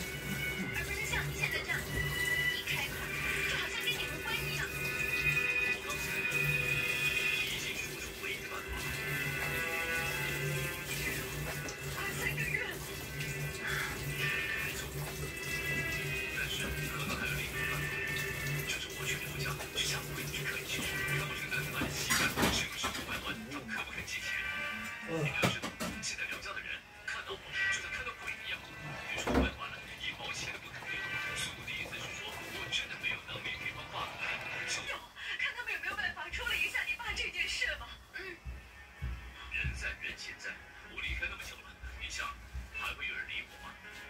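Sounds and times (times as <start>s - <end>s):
television music and voices: 0.0s - 44.0s
dishes clattering: 21.7s - 23.4s, 25.3s - 26.2s.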